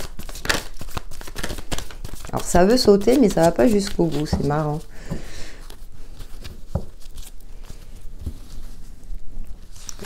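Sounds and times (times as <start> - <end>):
cards being shuffled: 0.0 - 8.8, 9.6 - 10.0.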